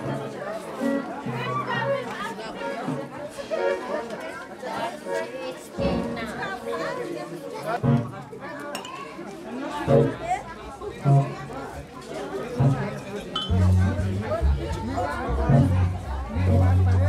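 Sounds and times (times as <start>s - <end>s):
crowd chattering: 0.0s - 17.0s
background music with bass: 12.6s - 17.0s.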